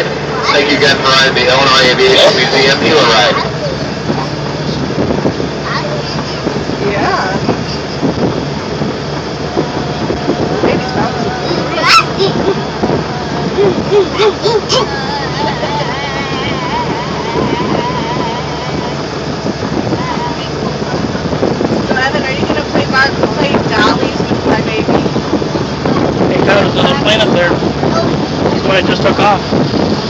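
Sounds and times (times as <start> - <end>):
people talking: 0.0 - 5.0, 5.6 - 8.8, 10.0 - 19.0, 19.9 - 29.4
engine drone: 0.0 - 30.0
wind buffeting microphone: 0.0 - 30.0.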